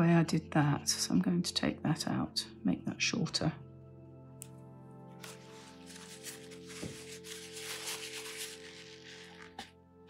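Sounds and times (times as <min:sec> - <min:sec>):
quiet background music: 0:00.0 - 0:10.0
tissue rubbing on paper: 0:05.2 - 0:09.7.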